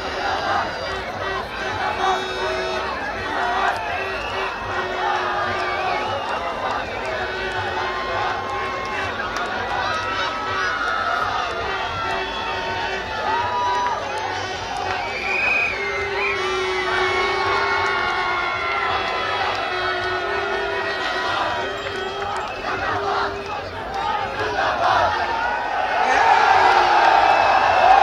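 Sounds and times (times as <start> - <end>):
crowd cheering and shouting: 0.0 - 28.0.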